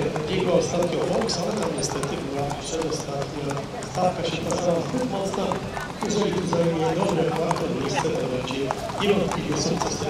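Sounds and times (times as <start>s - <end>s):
hooves clip-clopping on pavement: 0.0s - 10.0s.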